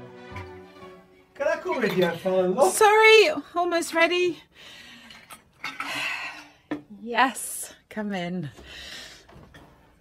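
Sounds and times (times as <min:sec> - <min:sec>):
glassware and utensils clinking: 0:01.7 - 0:02.4, 0:05.0 - 0:06.9.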